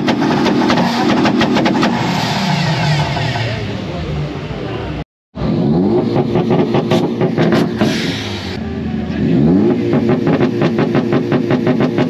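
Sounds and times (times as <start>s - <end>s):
exhaust pops and crackles: 0.0s - 2.0s, 6.1s - 8.0s, 9.7s - 12.0s
car engines revving: 0.0s - 12.0s.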